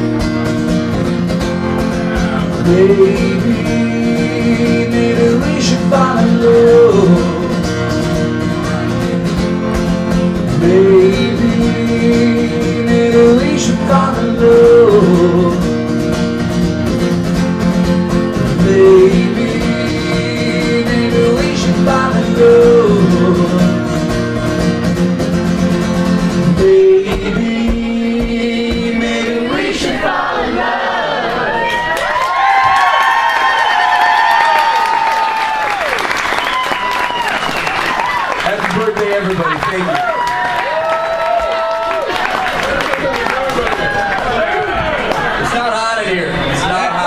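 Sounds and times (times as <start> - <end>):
strummed acoustic guitar: 0.0 - 30.0
man singing: 1.8 - 8.8, 10.4 - 16.0, 18.2 - 24.5, 26.0 - 30.0.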